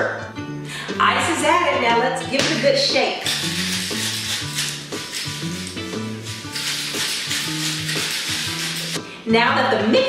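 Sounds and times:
background music with bass line: 0:00.0 - 0:10.0
ice rattling in cocktail shaker: 0:03.2 - 0:09.0.

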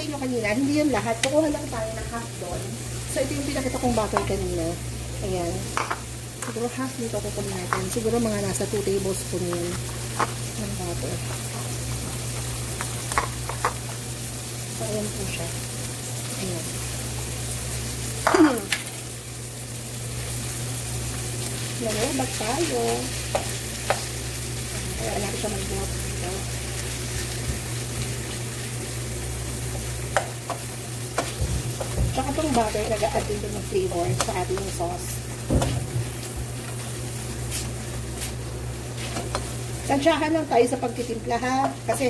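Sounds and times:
meat sizzling in a wok: 0:00.0 - 0:42.0
steady low hum: 0:00.0 - 0:42.0.

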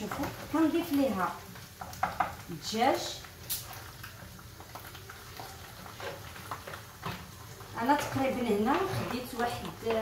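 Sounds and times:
wooden spoon scraping pan: 0:05.3 - 0:10.0.

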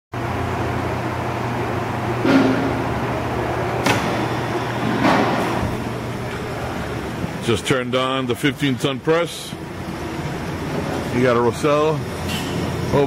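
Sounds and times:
punch press motor humming: 0:00.2 - 0:07.4.

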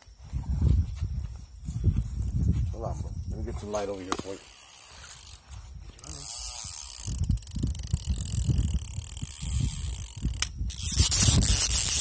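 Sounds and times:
fishing reel ratcheting: 0:03.8 - 0:05.4, 0:06.0 - 0:12.0.

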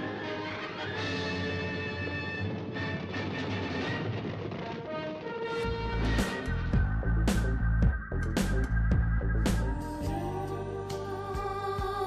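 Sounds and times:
rumbling clattering noise: 0:02.4 - 0:09.6
held orchestral chords: 0:09.7 - 0:12.0.

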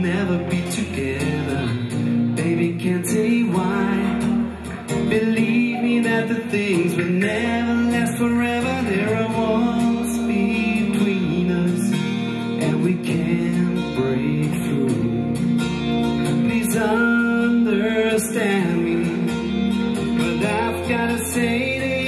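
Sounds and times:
man singing: 0:00.0 - 0:22.0
strummed acoustic guitar: 0:00.0 - 0:22.0.

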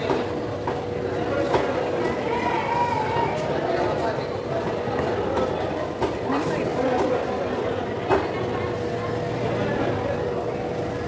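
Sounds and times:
market chatter: 0:00.0 - 0:11.0.

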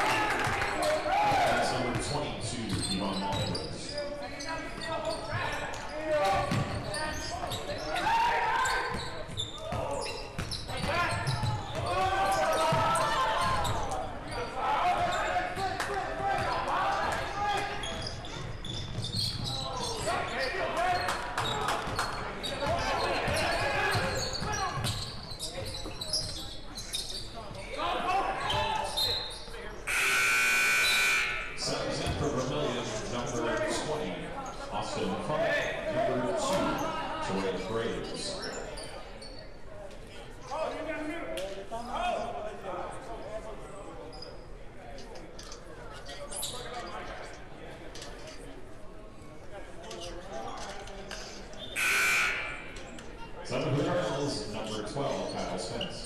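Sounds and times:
loud buzzer: 0:29.9 - 0:31.6, 0:51.8 - 0:52.8.

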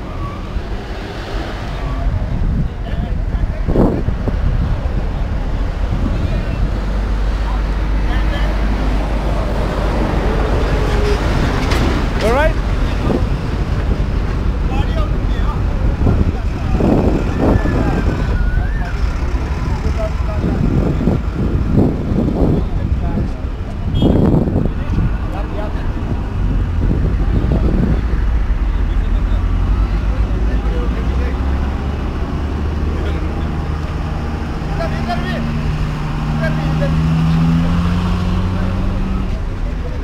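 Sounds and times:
motor traffic rumble: 0:00.0 - 0:40.0
people talking: 0:01.7 - 0:11.4, 0:12.1 - 0:13.6, 0:14.2 - 0:40.0.

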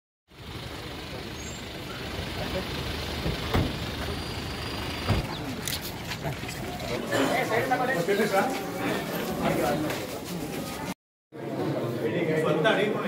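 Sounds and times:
vehicle engine running: 0:00.3 - 0:07.1
people talking: 0:02.2 - 0:02.9, 0:05.2 - 0:13.0.

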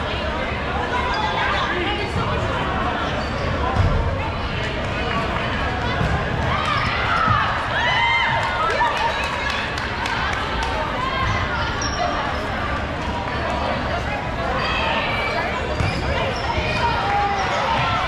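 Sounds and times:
balls bouncing on gym floor: 0:05.8 - 0:07.5.

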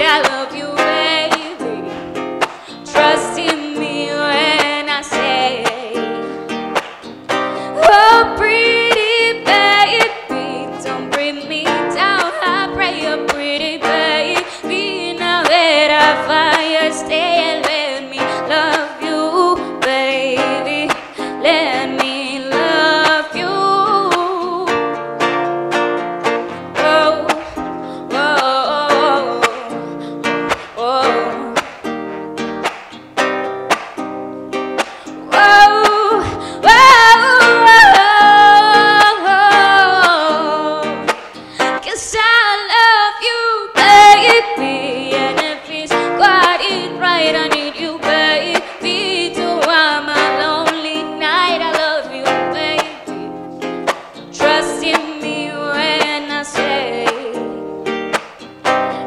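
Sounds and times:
woman singing: 0:00.0 - 0:25.1, 0:26.4 - 0:31.7, 0:34.8 - 0:58.0
acoustic guitar strumming: 0:00.0 - 0:59.0.

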